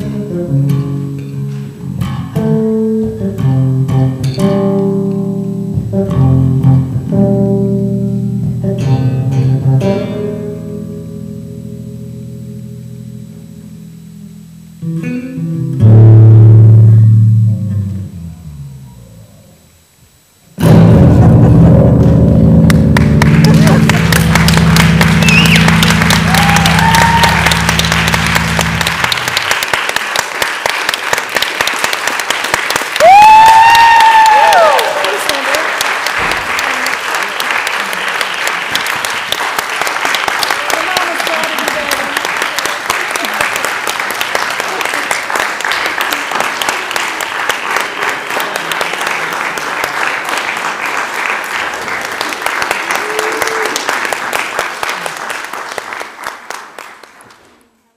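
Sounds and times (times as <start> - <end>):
electric bass low note: 11.0 - 19.7, 20.6 - 29.4
audience applauding and cheering: 22.6 - 57.9
loud whistle: 25.2 - 27.5.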